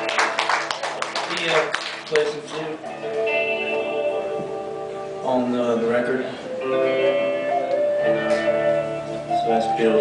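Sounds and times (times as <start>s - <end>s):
guitar chord ringing: 2.1s - 10.0s.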